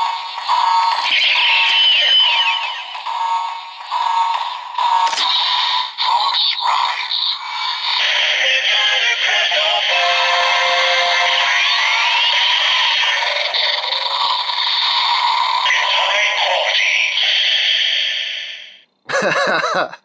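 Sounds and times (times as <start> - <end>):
processed voice calling: 0.0 - 3.1, 5.1 - 14.5, 15.6 - 18.0
electronic toy music: 0.0 - 17.2.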